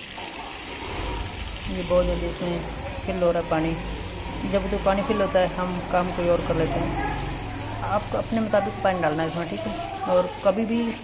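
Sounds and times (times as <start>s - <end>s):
water splashing into washing machine: 0.0s - 11.0s.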